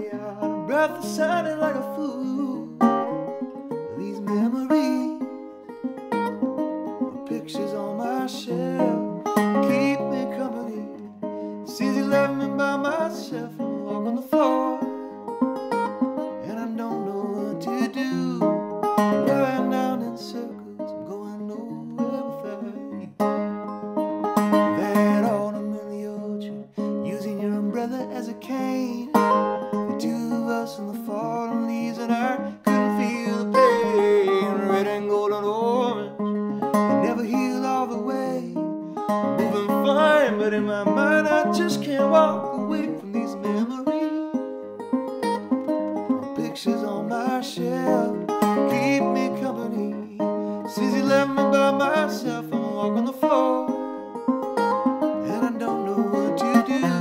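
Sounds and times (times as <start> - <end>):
man singing: 0.0 - 5.6, 7.1 - 15.2, 16.4 - 23.3, 24.5 - 44.5, 46.0 - 53.9, 55.2 - 57.0
resonator guitar: 0.0 - 57.0.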